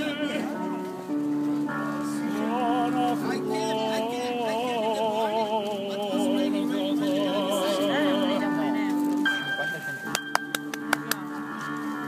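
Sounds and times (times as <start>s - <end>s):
handclaps: 10.1s - 11.4s.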